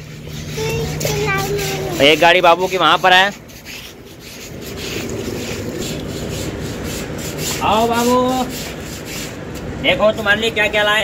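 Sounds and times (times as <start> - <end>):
rough scraping and rubbing: 0.0 - 9.6.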